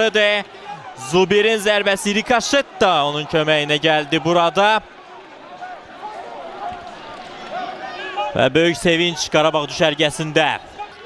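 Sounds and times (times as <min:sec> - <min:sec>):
distant players shouting and cheering: 0:00.0 - 0:11.0
stadium background noise: 0:00.0 - 0:11.0.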